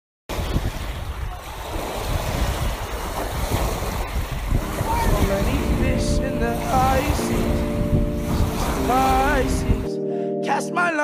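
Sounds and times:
ocean surf on sandy beach: 0:00.3 - 0:09.9
wind on microphone: 0:00.3 - 0:09.9
music: 0:04.6 - 0:11.0.

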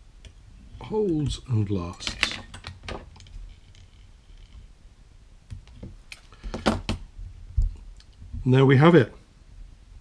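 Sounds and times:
small tools clicking and knocking: 0:00.2 - 0:04.6.

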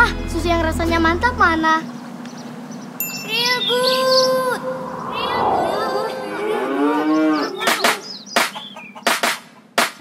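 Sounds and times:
cow mooing: 0:06.0 - 0:07.6
sharp claps or knocks: 0:07.7 - 0:10.0.

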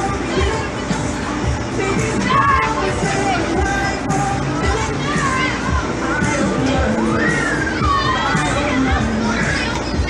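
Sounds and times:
fairground ride music: 0:00.0 - 0:10.0.

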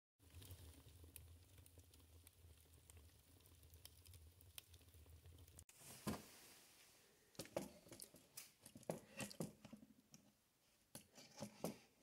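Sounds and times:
logs crackling in wood stove: 0:00.2 - 0:06.5, 0:07.3 - 0:10.2.

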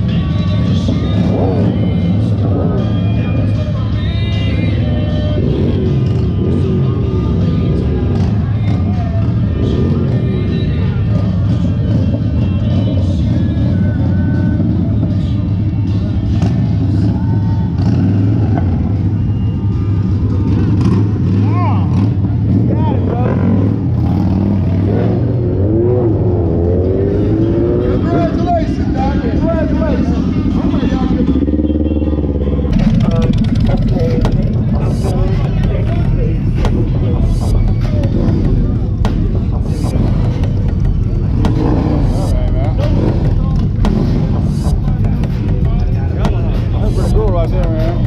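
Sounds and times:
crowd voices: 0:00.0 - 0:48.0
heavy engine rumble: 0:00.0 - 0:48.0
motorcycle engines: 0:00.0 - 0:48.0
music: 0:00.0 - 0:48.0.

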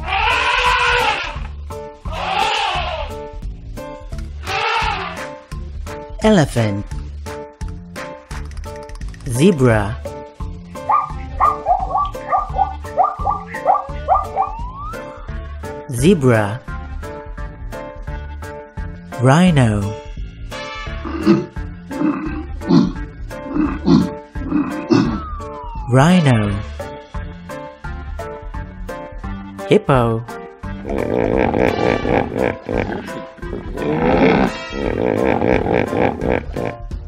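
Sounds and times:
elephant trumpeting: 0:00.0 - 0:01.5, 0:02.1 - 0:03.1, 0:04.4 - 0:05.3, 0:10.9 - 0:14.6, 0:30.8 - 0:36.7
background music: 0:00.0 - 0:37.0
loud low rhinoceros calls: 0:02.1 - 0:03.1, 0:04.4 - 0:05.2, 0:10.9 - 0:14.6.

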